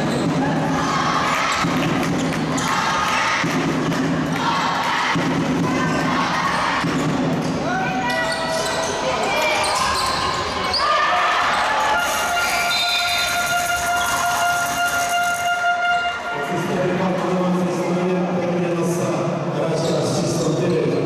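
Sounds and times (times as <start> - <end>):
voices of players and spectators: 0.0 - 21.0
steady horn tone: 12.0 - 16.7.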